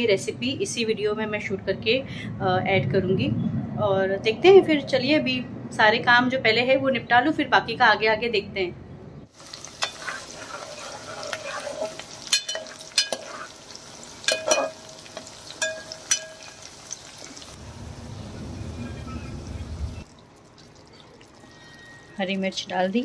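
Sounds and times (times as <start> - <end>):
low rumbling noise: 1.7 - 6.2, 17.6 - 20.0
onions sizzling in hot oil: 9.3 - 18.7
spoon clinking against pot: 12.3 - 13.5, 14.3 - 16.6.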